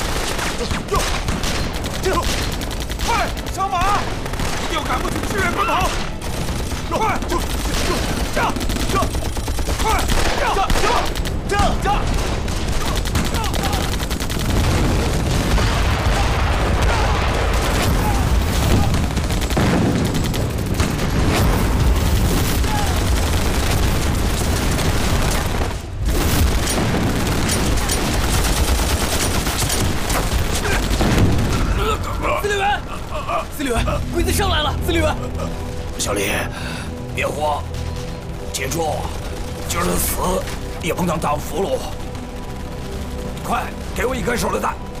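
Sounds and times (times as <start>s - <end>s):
rapid gunfire: 0.0s - 45.0s
explosions: 9.7s - 35.0s
men shouting: 16.0s - 19.1s.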